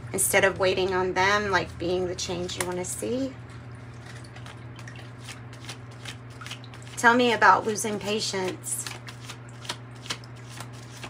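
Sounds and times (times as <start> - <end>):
cards being shuffled by hand: 4.4 - 11.0.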